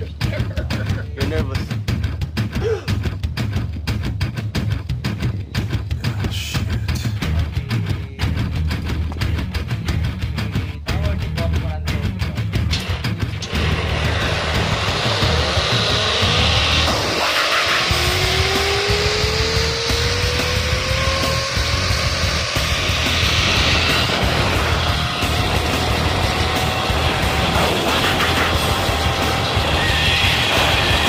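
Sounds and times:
wind noise on microphone: 3.6 - 10.0
zip-line pulley whine: 13.4 - 31.0.

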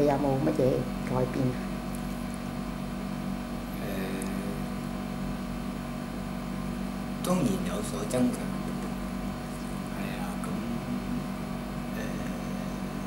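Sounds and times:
low electrical hum: 0.0 - 13.0
faint voice: 3.8 - 4.6.

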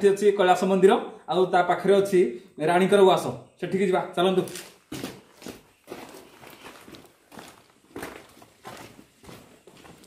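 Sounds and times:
footsteps on concrete floor: 4.4 - 10.0.

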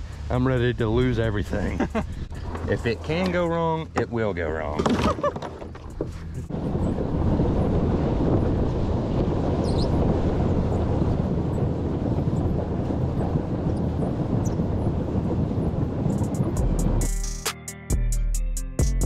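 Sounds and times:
wind buffeting microphone: 0.0 - 17.1
music: 16.3 - 19.0.

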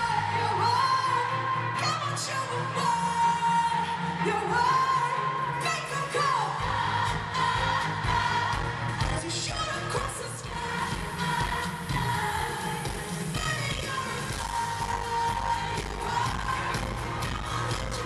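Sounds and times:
female pop vocal: 0.0 - 18.0
drums: 6.6 - 18.0
deep bass: 14.3 - 18.0.

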